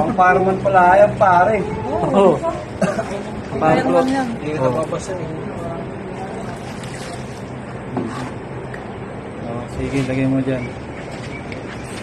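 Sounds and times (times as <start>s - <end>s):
steady background hum: 0.0s - 12.0s
water sloshing and dripping: 6.2s - 7.6s
water splash: 6.4s - 7.5s.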